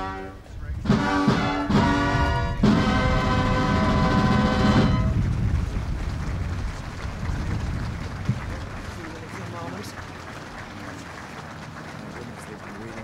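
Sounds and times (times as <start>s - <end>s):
brass band sustained chord: 0.0s - 5.2s
outdoor background noise: 0.0s - 13.0s.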